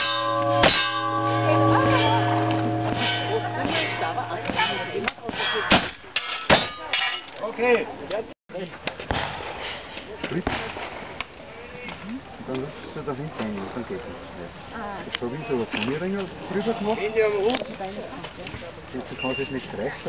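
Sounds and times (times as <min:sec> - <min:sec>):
steel plates clanging: 0:00.0 - 0:07.4.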